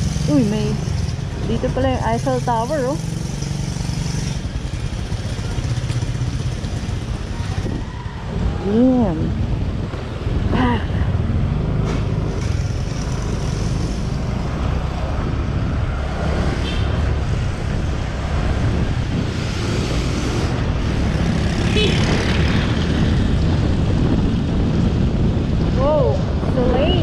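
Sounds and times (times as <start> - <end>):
scooter engine and tyres: 0.0 - 26.1
wind buffeting microphone: 6.6 - 27.0.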